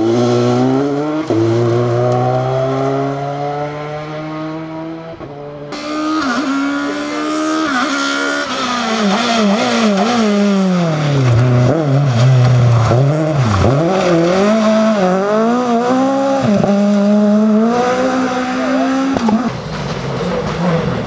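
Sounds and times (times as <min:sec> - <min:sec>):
rally car engine at high revs: 0:00.0 - 0:21.0.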